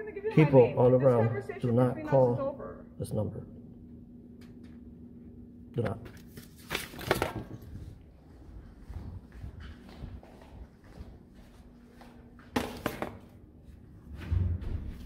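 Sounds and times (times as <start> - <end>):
faint room hum: 0.0 - 15.0.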